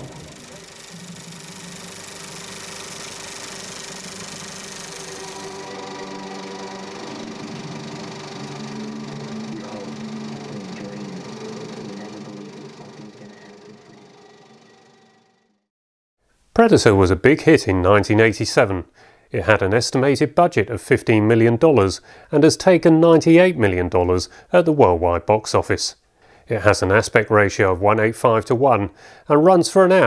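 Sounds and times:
film projector whirring: 0.0s - 15.6s.

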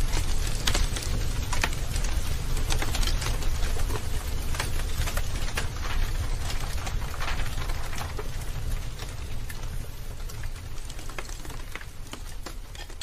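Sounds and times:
dense crackling and popping: 0.0s - 13.0s.

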